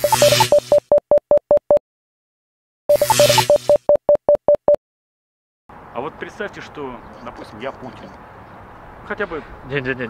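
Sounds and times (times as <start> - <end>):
static burst with beeps: 0.0 - 0.8, 2.9 - 3.8
short evenly spaced beeps: 0.0 - 1.7, 2.9 - 4.8.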